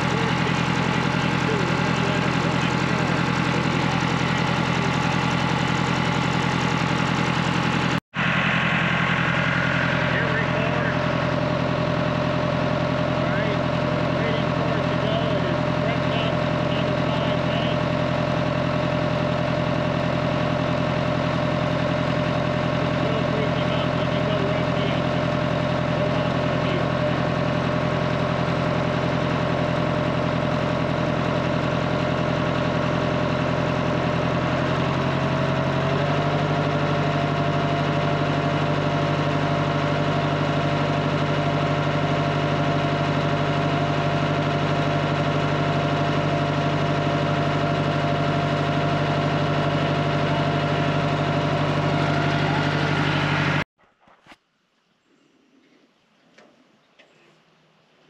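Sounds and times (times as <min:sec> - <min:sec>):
diesel engine idling: 0:00.0 - 0:53.7.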